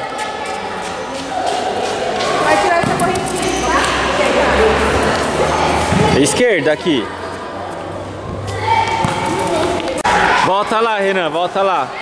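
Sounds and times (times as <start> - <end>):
children's voices echoing: 0.0 - 12.0
ball thudding on hard floor: 2.8 - 3.4, 9.0 - 9.4.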